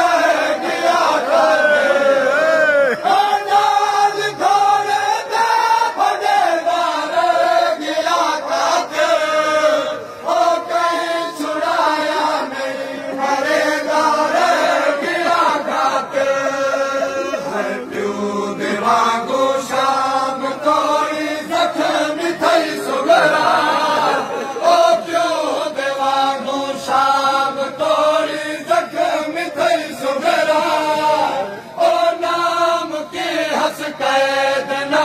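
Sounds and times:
men chanting a lament: 0:00.0 - 0:35.0.

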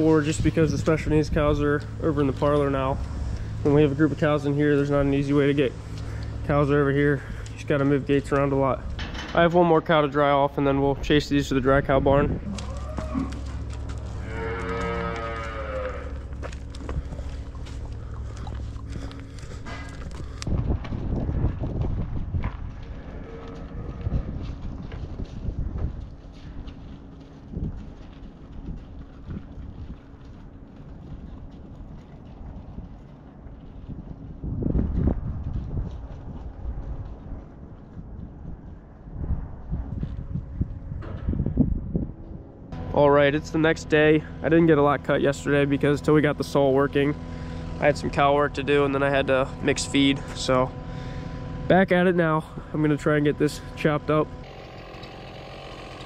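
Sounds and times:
uneven low rumble: 0:00.0 - 0:54.5
cow mooing: 0:12.4 - 0:17.2.

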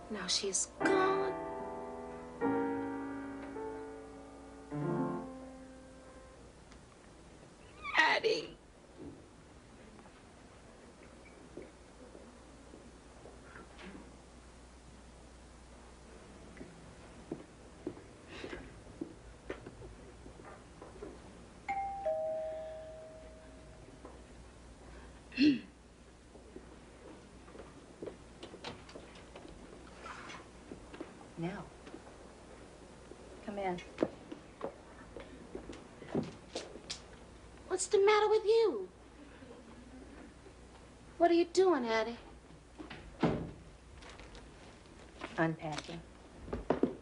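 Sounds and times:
piano chord: 0:00.0 - 0:06.6, 0:21.7 - 0:24.0
woman sobbing: 0:25.4 - 0:25.7.

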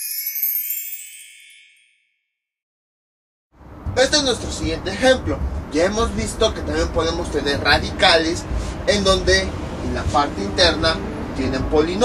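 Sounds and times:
bell-like jingle tones: 0:00.0 - 0:02.2.

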